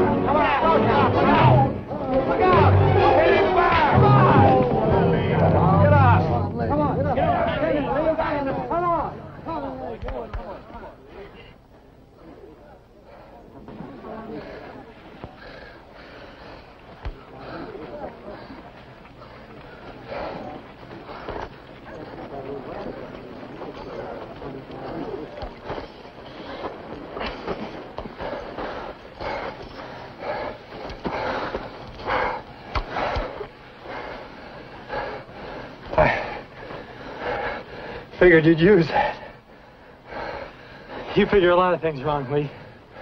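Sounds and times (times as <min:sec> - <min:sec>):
men shouting: 0:00.0 - 0:10.0.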